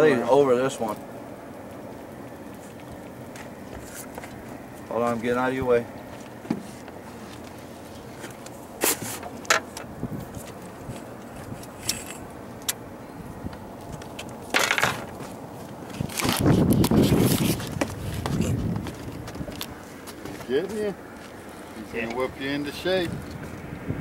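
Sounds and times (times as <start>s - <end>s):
camera handling rustle: 13.9s - 20.4s.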